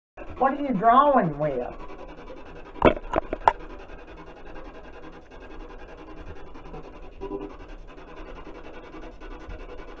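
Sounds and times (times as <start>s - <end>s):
microphone handling rubbing: 2.8s - 3.6s.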